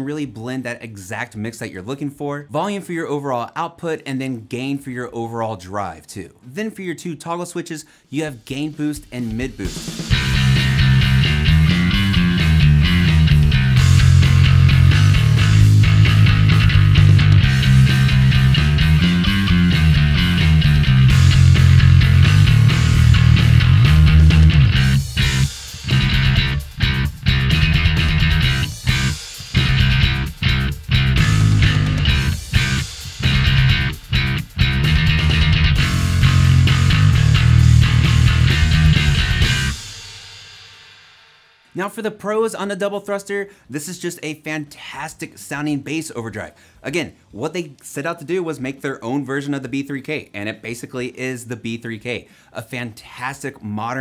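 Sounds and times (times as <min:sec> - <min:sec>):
overdriven bass guitar riff: 0:09.6 - 0:40.2.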